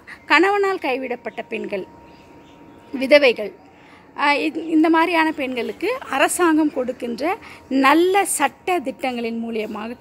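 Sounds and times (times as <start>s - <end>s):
woman talking: 0.0s - 2.0s, 2.9s - 3.6s, 4.2s - 10.0s.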